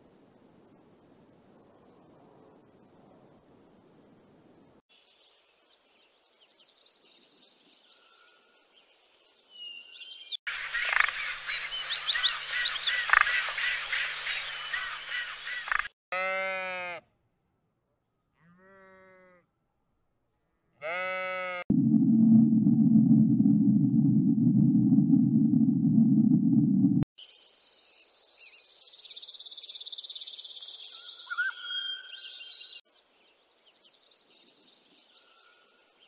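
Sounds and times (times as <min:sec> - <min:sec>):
bleat-like animal calls: 0:16.1 - 0:17.0, 0:18.4 - 0:19.5, 0:20.8 - 0:21.7
loud low rumble: 0:21.7 - 0:27.1.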